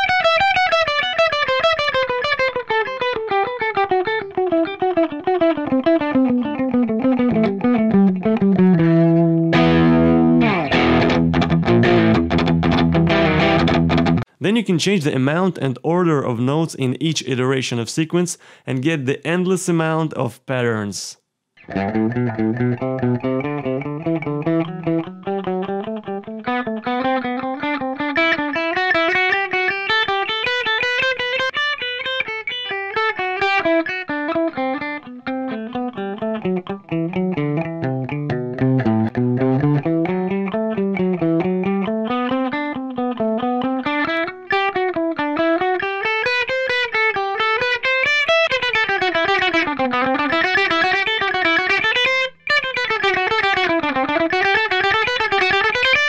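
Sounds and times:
electric guitar picking scales: 0:00.0 - 0:14.3, 0:21.6 - 0:56.0.

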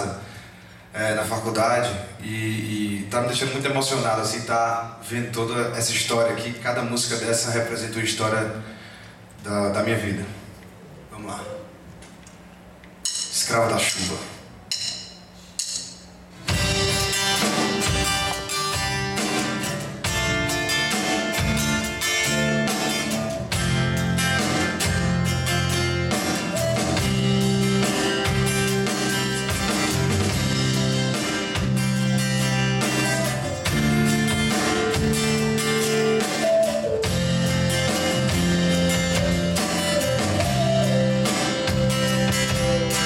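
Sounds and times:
drums: 0:12.6 - 0:43.0
acoustic guitar: 0:16.3 - 0:43.0
band playing: 0:16.3 - 0:43.0.

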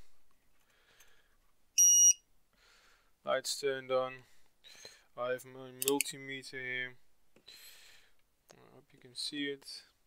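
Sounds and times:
short electronic beep: 0:01.8 - 0:02.2.

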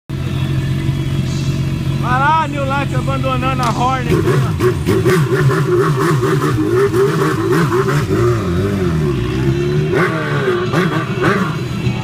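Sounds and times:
motorcycle engine revving: 0:00.1 - 0:12.0.

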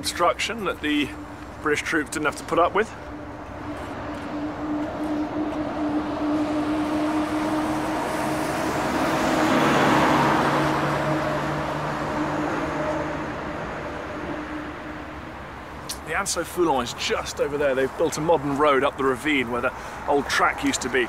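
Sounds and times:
steady low hum: 0:00.0 - 0:09.1
car passing by: 0:00.8 - 0:21.0.

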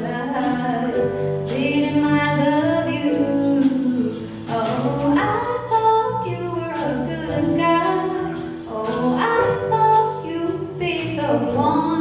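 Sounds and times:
woman singing into microphone: 0:00.0 - 0:12.0.

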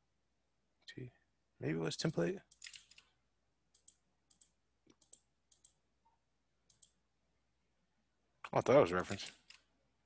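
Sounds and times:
faint mouse clicks: 0:03.7 - 0:07.0.

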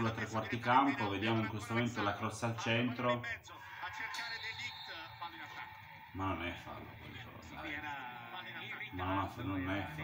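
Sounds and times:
faint television commentary: 0:00.0 - 0:10.0.

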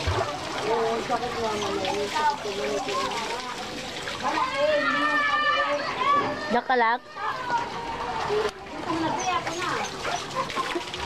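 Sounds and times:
voices talking: 0:00.0 - 0:11.0
water splashing onto concrete: 0:00.0 - 0:11.0.

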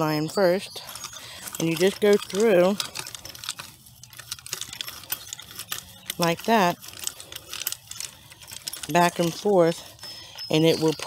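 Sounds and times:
hand cultivator scraping stony soil: 0:00.0 - 0:11.0.

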